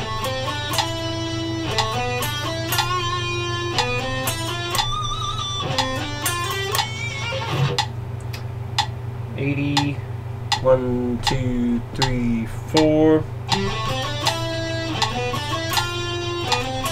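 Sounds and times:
electric guitar single notes: 0.0s - 7.9s, 13.4s - 16.9s
low hum: 0.0s - 16.9s.

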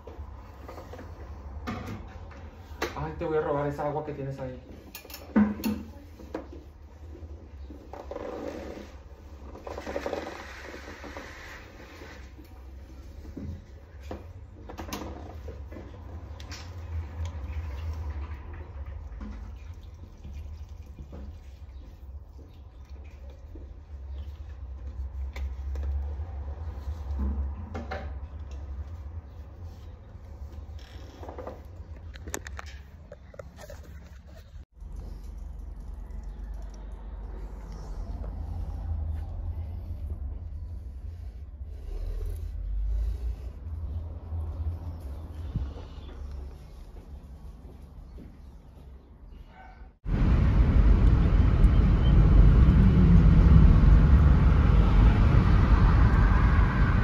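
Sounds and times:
water pouring into soil: 18.8s - 23.5s
steady low hum: 50.1s - 57.0s.

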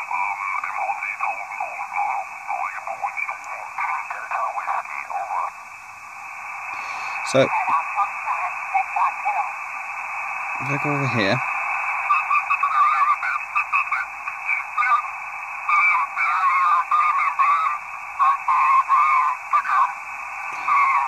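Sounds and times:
narrow-band radio speech: 0.0s - 5.6s, 6.8s - 9.6s, 10.6s - 21.0s
radio hiss: 0.0s - 21.0s.

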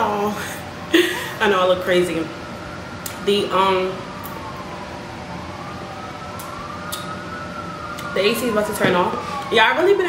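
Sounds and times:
distant siren wailing: 0.0s - 10.0s
steady background hum: 0.0s - 10.0s.

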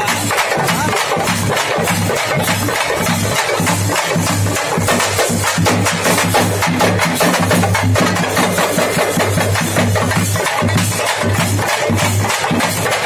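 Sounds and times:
drum band playing fast beats: 0.0s - 13.0s.

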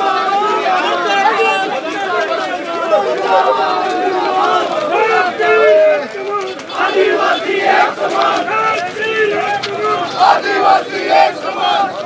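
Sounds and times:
crowd of men talking: 0.0s - 12.0s.

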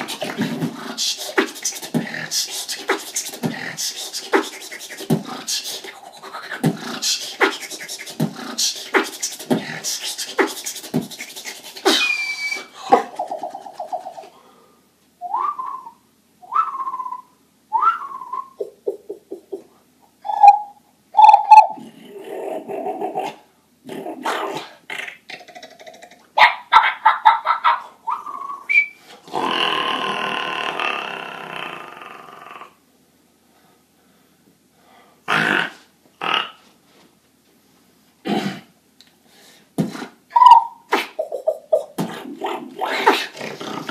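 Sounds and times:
beatboxing kick and hi-hat beat: 0.0s - 12.2s, 39.8s - 40.2s, 40.9s - 43.4s
beatboxed clicks: 0.0s - 14.3s, 18.6s - 19.7s, 24.2s - 26.3s, 39.8s - 43.9s
beatboxed whistle-like chirps: 0.0s - 14.3s, 15.2s - 19.0s, 20.2s - 21.8s, 28.1s - 29.0s, 39.8s - 42.2s.

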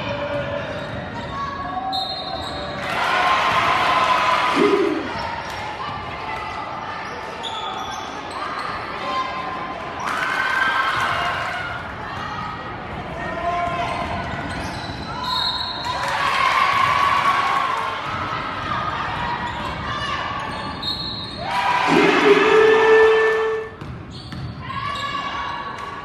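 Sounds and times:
sneakers squeaking: 0.3s - 2.8s, 7.0s - 8.8s, 14.4s - 15.9s, 20.4s - 21.4s, 23.8s - 25.4s
people calling out: 4.5s - 5.3s, 21.8s - 23.7s.

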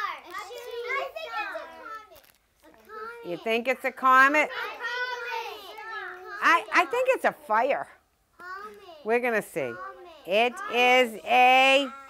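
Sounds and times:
children calling out together: 0.0s - 3.4s, 4.5s - 7.0s, 8.4s - 9.1s, 9.8s - 12.0s.

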